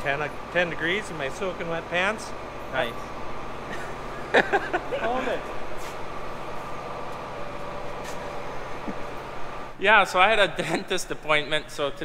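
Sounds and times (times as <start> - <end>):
faint constant whine: 0.0 - 12.0
mechanical hum and hiss: 0.0 - 12.0.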